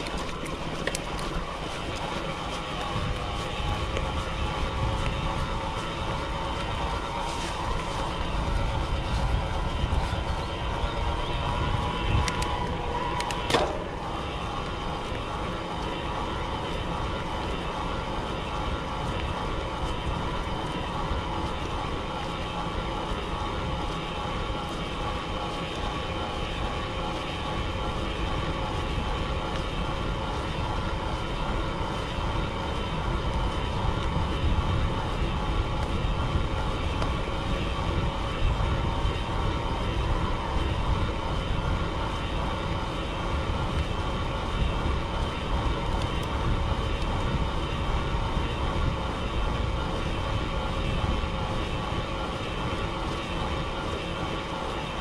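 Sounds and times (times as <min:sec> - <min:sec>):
tyres humming on asphalt: 0:00.0 - 0:55.0
wind rushing over microphone: 0:00.0 - 0:55.0.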